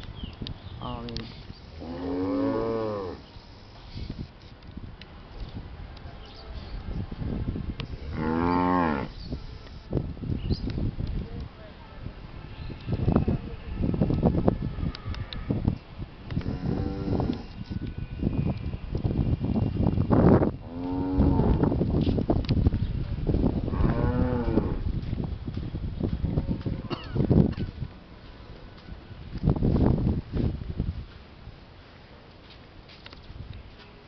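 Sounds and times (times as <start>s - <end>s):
cow mooing: 8.1s - 9.1s.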